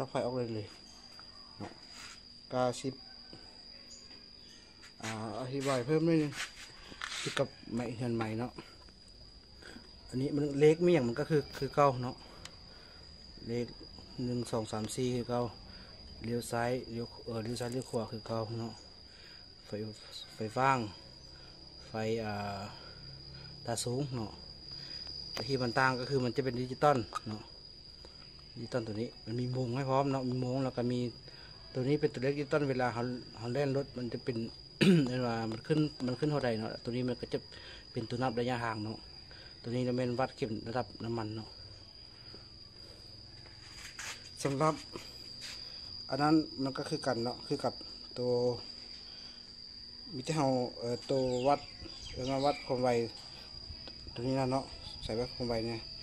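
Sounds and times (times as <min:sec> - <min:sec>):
high-pitched insect trill: 0:00.0 - 0:56.0
man speaking: 0:05.0 - 0:06.4, 0:44.4 - 0:44.9.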